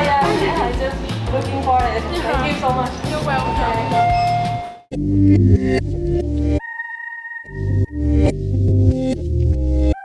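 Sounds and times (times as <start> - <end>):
background music with deep bass: 0.0 - 6.6, 7.4 - 10.0.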